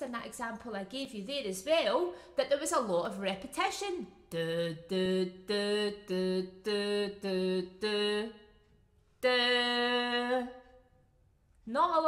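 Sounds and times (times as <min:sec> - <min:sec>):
woman singing unaccompanied: 0:04.3 - 0:08.5, 0:09.2 - 0:10.7.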